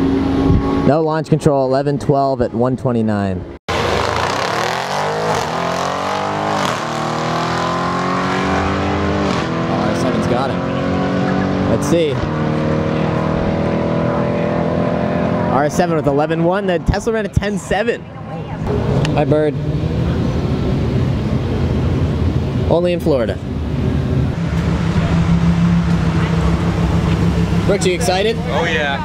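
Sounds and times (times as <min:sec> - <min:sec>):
car engine droning: 0:03.7 - 0:29.0.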